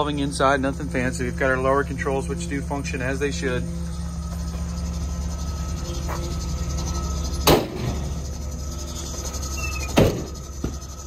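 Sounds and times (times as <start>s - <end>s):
van engine idling: 0.0s - 11.0s
sharp knocks: 10.0s - 10.8s.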